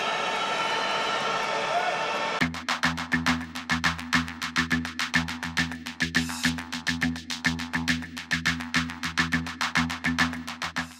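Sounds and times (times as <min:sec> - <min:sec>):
arena crowd roar: 0:00.0 - 0:02.4
music with fast drum beat: 0:02.4 - 0:10.9.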